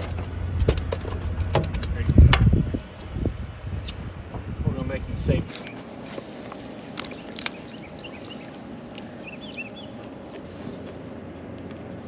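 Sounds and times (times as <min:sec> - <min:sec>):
outdoor background noise over water: 0:00.0 - 0:12.0.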